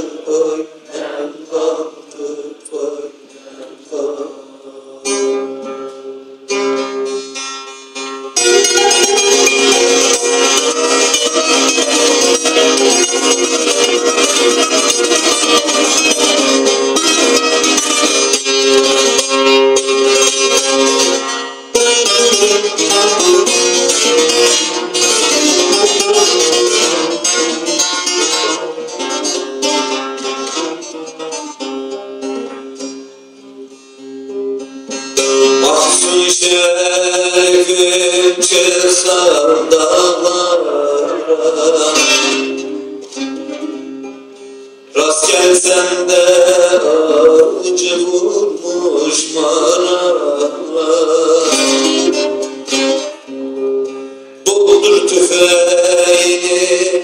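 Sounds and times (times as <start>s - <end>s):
plucked long-necked lute: 5.0s - 57.0s.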